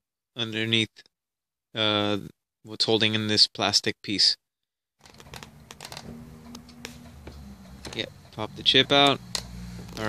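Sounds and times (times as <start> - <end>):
faint steady hum: 5.1 - 10.0
low rumble: 5.1 - 10.0.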